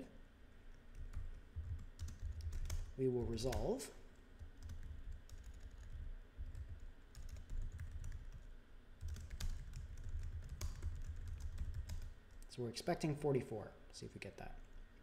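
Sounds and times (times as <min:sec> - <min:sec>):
computer keyboard typing: 0:00.8 - 0:03.8, 0:04.4 - 0:12.5.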